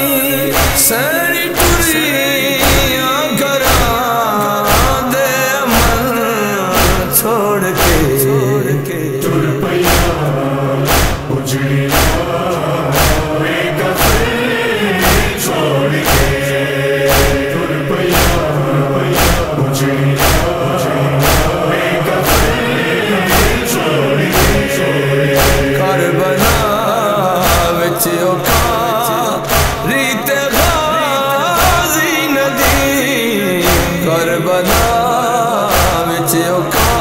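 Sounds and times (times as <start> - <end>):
chest-beating rhythm: 0.0 - 37.0
male chorus chanting: 0.0 - 37.0.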